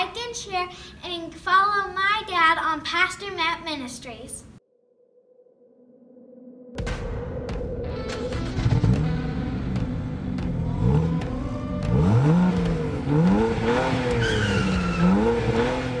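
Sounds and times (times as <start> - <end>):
car engine revving: 8.0 - 16.0
tire squeal: 14.0 - 15.7.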